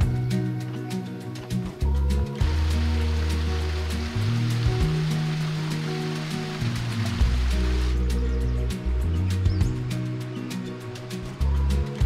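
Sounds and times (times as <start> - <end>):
music with sustained bass notes: 0.0 - 12.0
waterfall trickling down rock: 2.4 - 8.1.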